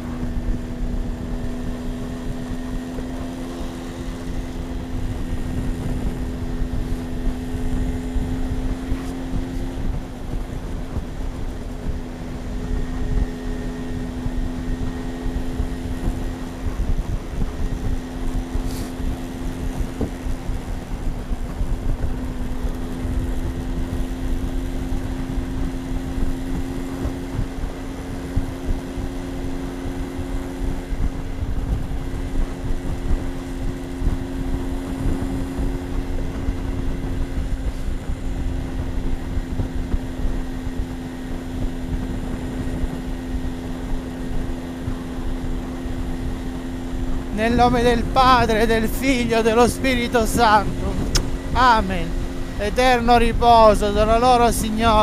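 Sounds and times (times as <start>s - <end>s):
motorbike engine cruising: 0.0s - 55.0s
wind rumble on microphone: 0.0s - 55.0s.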